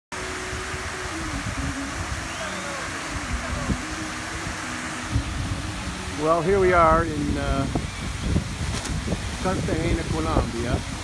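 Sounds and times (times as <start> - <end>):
steady outdoor hiss: 0.1 - 11.0.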